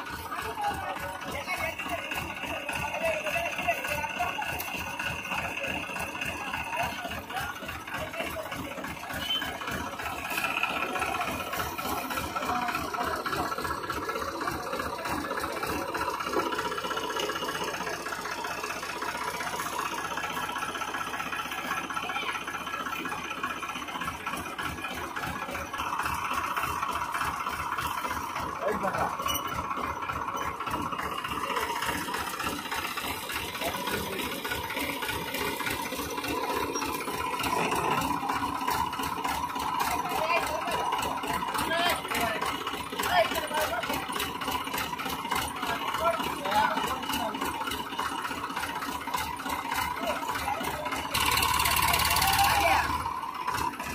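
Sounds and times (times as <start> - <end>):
diesel tractor engine idling: 0.0 - 53.9.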